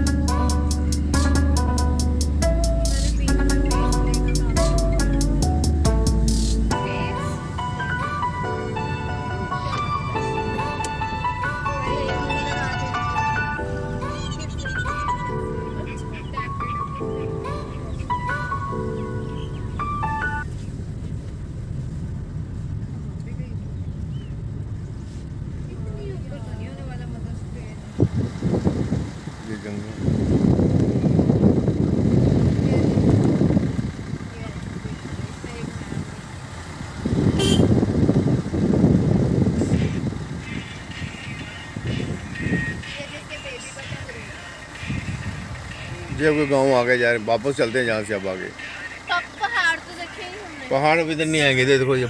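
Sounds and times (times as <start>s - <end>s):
car engine and road rumble: 0.0s - 52.0s.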